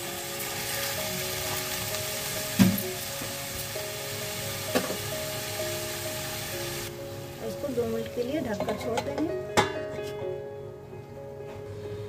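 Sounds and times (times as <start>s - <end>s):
vegetables sizzling in a pan: 0.0s - 9.3s.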